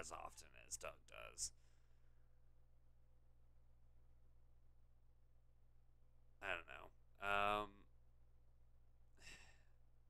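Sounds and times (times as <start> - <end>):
breath into microphone: 9.2 - 9.8.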